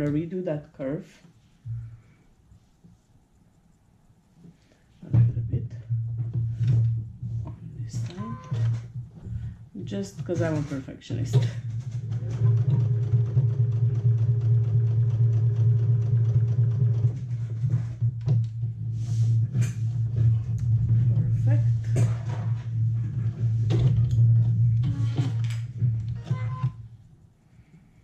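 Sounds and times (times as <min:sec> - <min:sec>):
sewing machine running: 0:10.0 - 0:18.0.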